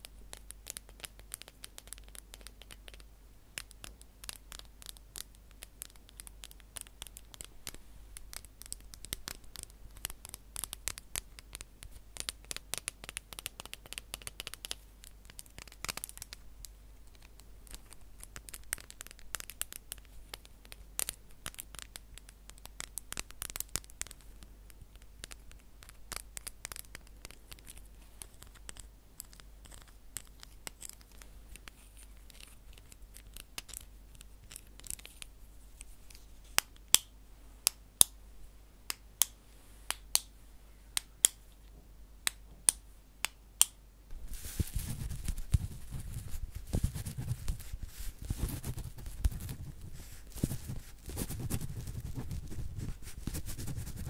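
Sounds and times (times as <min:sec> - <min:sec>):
object scratched and handled: 0:44.1 - 0:54.0.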